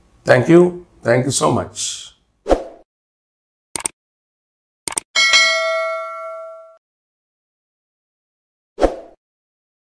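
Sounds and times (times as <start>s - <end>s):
metallic notification bell ding: 5.2s - 6.8s.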